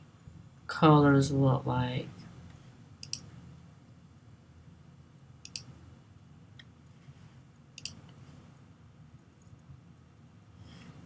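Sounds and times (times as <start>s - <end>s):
faint low hum: 0.0s - 11.0s
computer mouse clicks: 3.0s - 3.3s, 5.4s - 5.7s, 7.8s - 8.2s.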